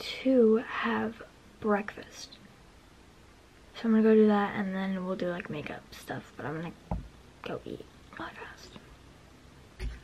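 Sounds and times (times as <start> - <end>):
person whispering: 7.7 - 8.9.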